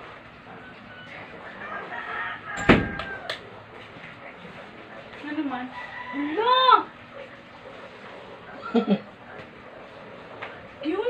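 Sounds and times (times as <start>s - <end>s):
rooster crowing: 0.6s - 3.4s, 5.7s - 6.9s
door banging shut: 2.6s - 3.1s.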